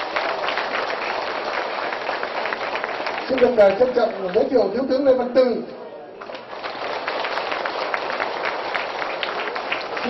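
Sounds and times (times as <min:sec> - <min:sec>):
audience applauding: 0:00.0 - 0:04.7, 0:06.2 - 0:10.0.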